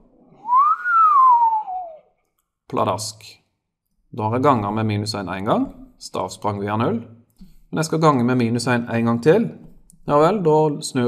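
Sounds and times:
person whistling gliding note: 0.3 - 2.1.

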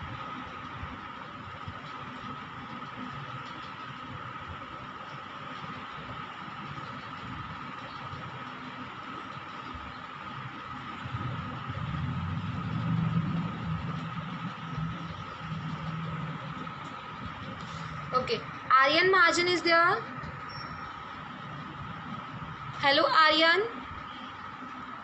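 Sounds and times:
low engine-like rumble: 0.0 - 25.0
faint steady tone: 4.6 - 25.0.

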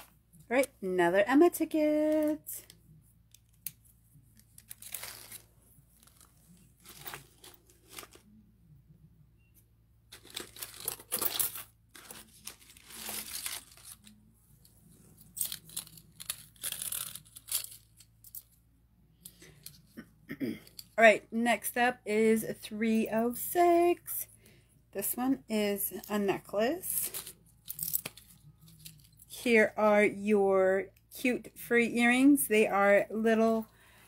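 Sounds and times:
paper rustling and tearing: 4.6 - 8.3, 10.2 - 14.1.

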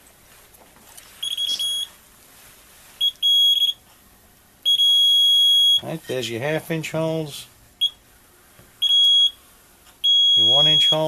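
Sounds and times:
high-pitched alarm beeps: 1.2 - 1.9, 3.0 - 3.8, 4.6 - 5.8, 8.8 - 9.4, 10.0 - 11.0.

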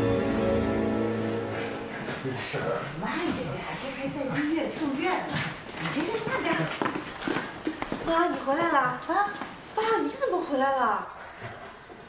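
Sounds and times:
footsteps on a hard floor: 1.2 - 10.0.

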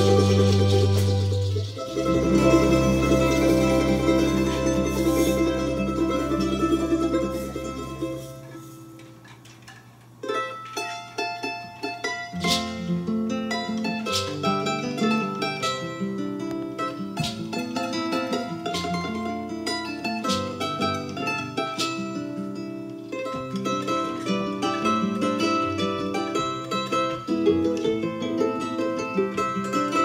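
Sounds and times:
double bass: 0.0 - 8.8
charango: 0.0 - 30.0
guitar: 0.0 - 30.0.

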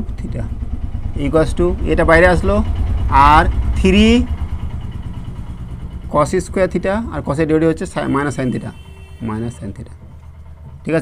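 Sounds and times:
engine idling rumble: 0.0 - 11.0.

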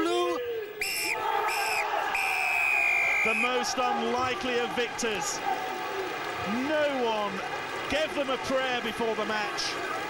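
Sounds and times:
crowd cheering: 0.4 - 10.0
referee's whistle blasts: 0.8 - 3.6.

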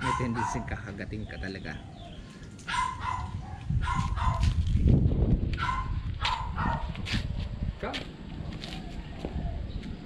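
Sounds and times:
dog barking: 0.0 - 0.9, 2.7 - 4.6, 5.6 - 7.0.

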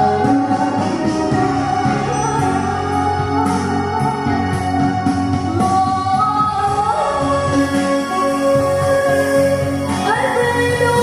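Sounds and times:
karaoke backing track: 0.0 - 11.0
woman singing into microphone: 0.0 - 11.0.

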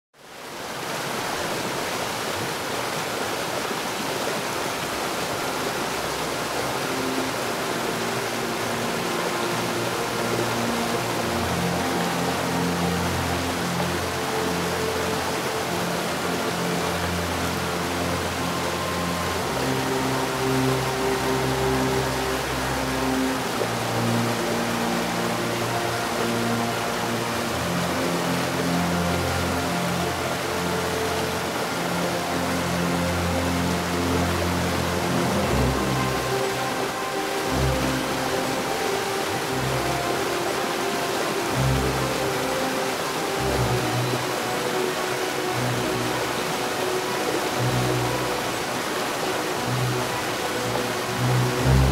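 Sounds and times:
waterfall rushing: 0.2 - 51.9
slow low chord music: 4.8 - 51.9.

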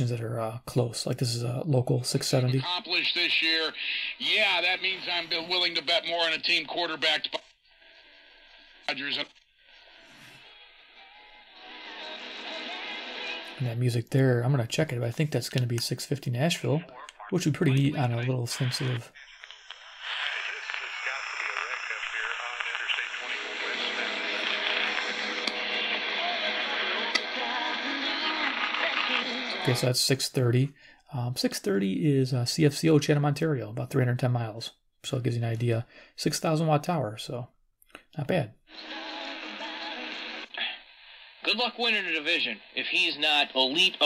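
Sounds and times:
voice on thin radio speaker: 2.0 - 7.4, 8.9 - 9.3, 14.7 - 24.8, 41.4 - 44.0
music on thin radio speaker: 4.2 - 13.8, 17.2 - 29.8, 38.7 - 44.0.

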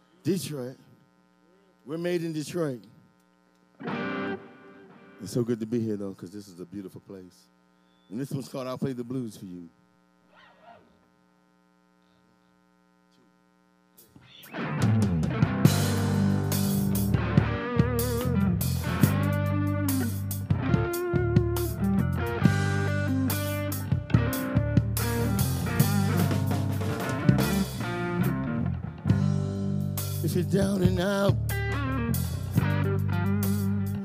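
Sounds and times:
faint amplifier hum: 0.0 - 34.0
electric guitar bending notes: 3.8 - 5.5, 14.2 - 34.0
drum kit: 14.0 - 34.0
bass guitar: 14.2 - 34.0.

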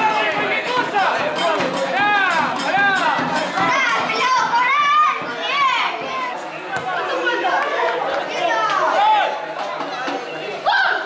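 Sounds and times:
background noise: 0.0 - 11.0.

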